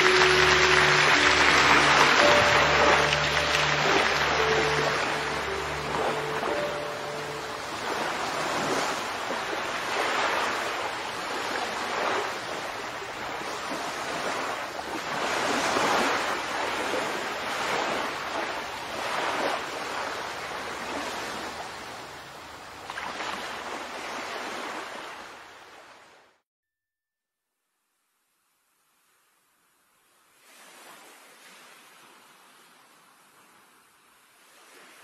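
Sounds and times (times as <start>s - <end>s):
sea waves washing onto shore: 0.0s - 26.2s, 30.2s - 35.0s.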